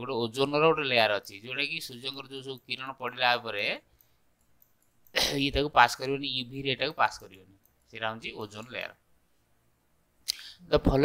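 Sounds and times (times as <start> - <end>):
faint clicks: 3.9 - 5.2.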